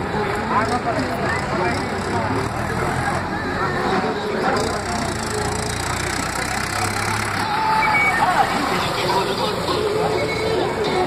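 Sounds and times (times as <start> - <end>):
background voices: 0.0 - 11.0
motor vehicle engines running: 0.0 - 11.0
tractor passing: 0.0 - 11.0.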